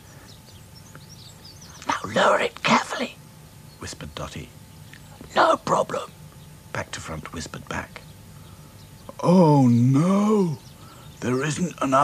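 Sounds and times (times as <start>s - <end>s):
faint bird chirps: 0.0s - 12.0s
person speaking: 1.8s - 3.2s, 5.3s - 6.1s.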